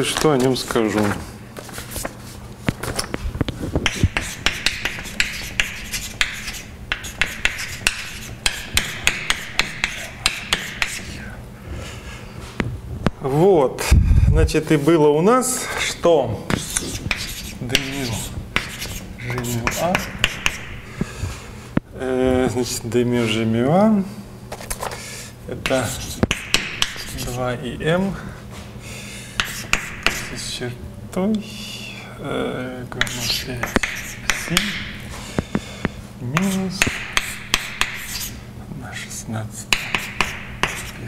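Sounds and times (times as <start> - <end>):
chalk tapping on blackboard: 3.8 - 11.2, 16.5 - 20.8, 25.6 - 27.4, 29.4 - 30.3, 33.0 - 35.0, 36.4 - 38.4, 39.7 - 41.0
chalk scratching on blackboard: 3.8 - 11.3, 15.8 - 20.8, 25.7 - 27.4, 29.4 - 30.3, 33.0 - 34.6, 36.4 - 38.4, 39.6 - 41.0.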